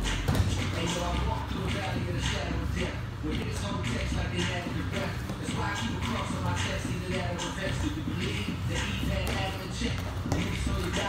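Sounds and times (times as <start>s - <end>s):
wrestlers scuffling on a mat: 7.9s - 11.0s.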